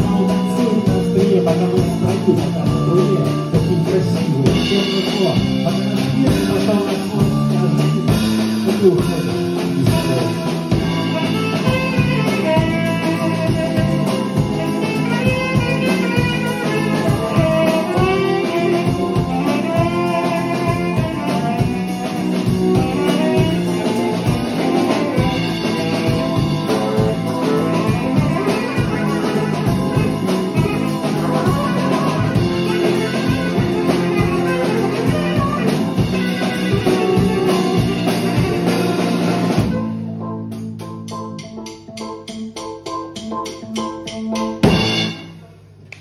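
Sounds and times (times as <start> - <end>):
saxophone: 0.0 - 40.4
keyboard and guitar chords: 0.0 - 45.8
drum kit beat: 0.0 - 46.0.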